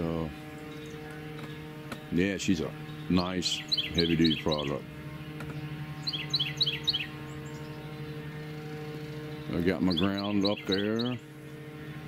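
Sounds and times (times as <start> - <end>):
songbird singing: 0.0 - 12.0
steady low hum: 0.0 - 12.0.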